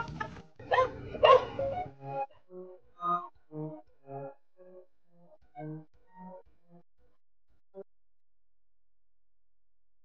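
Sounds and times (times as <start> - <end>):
background music: 0.0 - 6.4
dog barking: 0.7 - 1.6.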